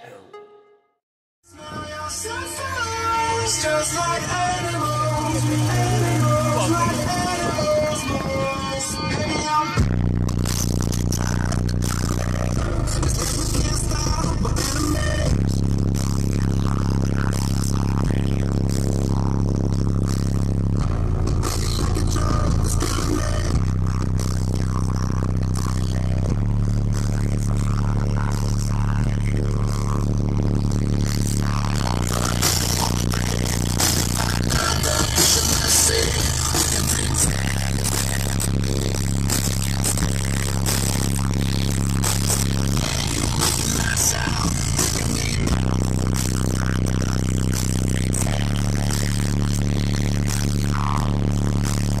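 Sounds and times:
loud bass-heavy music: 0:01.4 - 0:52.0.

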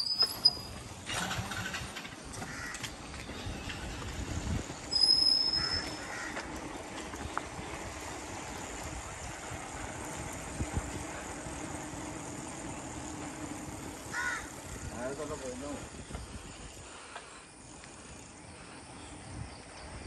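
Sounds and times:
short high-pitched squeal: 0:00.0 - 0:01.8
bicycle tyres rolling over pavers: 0:00.0 - 0:20.0.

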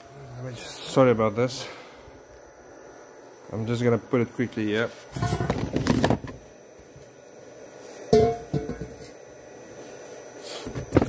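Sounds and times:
sharp metal clank with ring: 0:08.1 - 0:09.0.

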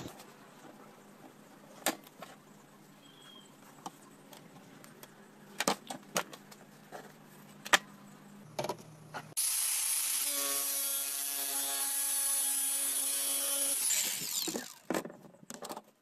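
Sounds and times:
angle grinder cutting plastic pipe: 0:09.4 - 0:14.9.

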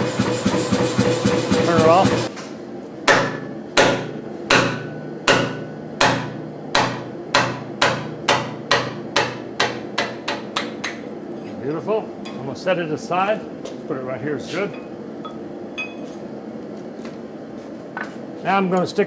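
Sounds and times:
hammer striking steel: 0:03.0 - 0:11.1.

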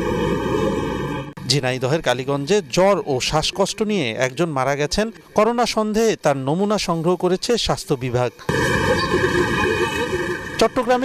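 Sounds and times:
news narration: 0:01.3 - 0:11.0.

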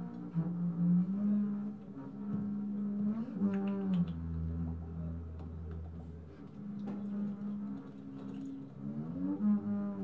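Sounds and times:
low buzzing held tones: 0:00.0 - 0:10.0.

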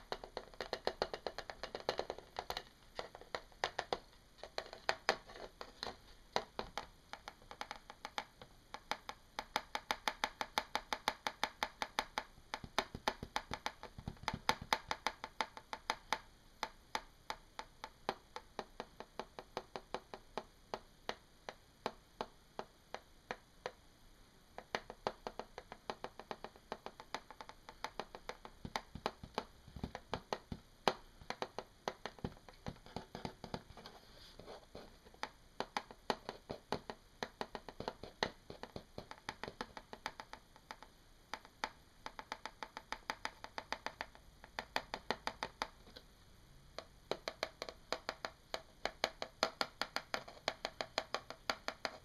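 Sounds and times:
fingertips tapping on plastic: 0:00.0 - 0:23.8, 0:24.6 - 0:46.1, 0:46.8 - 0:52.0.

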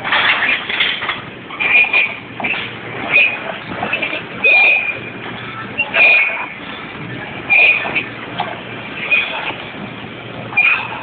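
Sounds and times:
weight machine squealing: 0:00.0 - 0:08.2, 0:08.9 - 0:09.7, 0:10.4 - 0:11.0
gym noise: 0:00.0 - 0:11.0.

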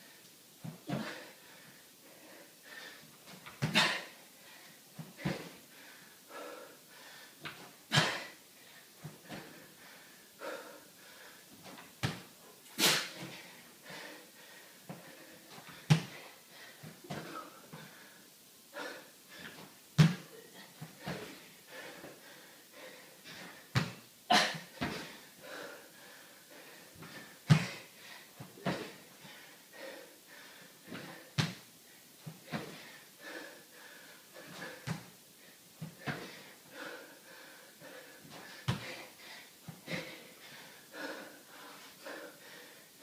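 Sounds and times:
hard breathing: 0:00.0 - 0:11.7, 0:12.4 - 0:23.8, 0:24.6 - 0:43.0
feet landing on wooden floor: 0:11.6 - 0:12.3, 0:14.9 - 0:16.2, 0:19.5 - 0:21.4, 0:23.7 - 0:24.0, 0:27.0 - 0:27.8, 0:30.9 - 0:31.6, 0:38.4 - 0:39.0.

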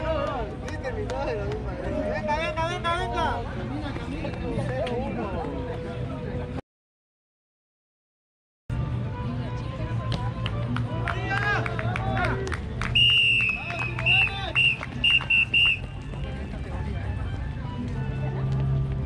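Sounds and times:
shrill whistle blasts: 0:13.0 - 0:15.8.

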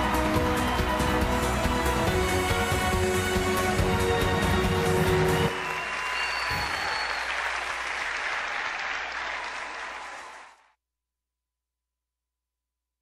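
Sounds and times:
music: 0:00.0 - 0:07.4
audience applauding and cheering: 0:00.0 - 0:10.6.

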